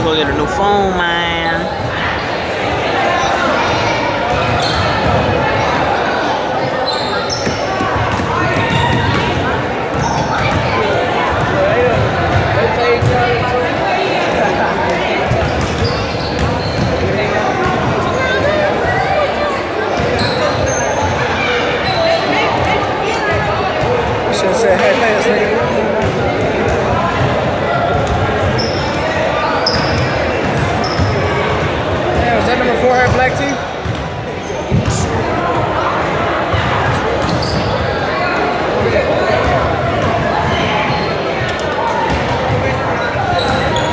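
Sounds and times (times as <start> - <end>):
babble of voices: 0.0 - 43.9
basketballs bouncing on hardwood: 7.4 - 13.4, 15.2 - 18.0, 29.8 - 32.4.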